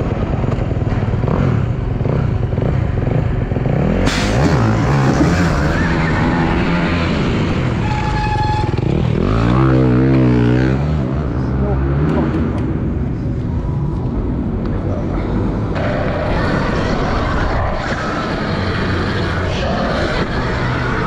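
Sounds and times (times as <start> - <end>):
motorcycle engine running: 0.0 - 4.1.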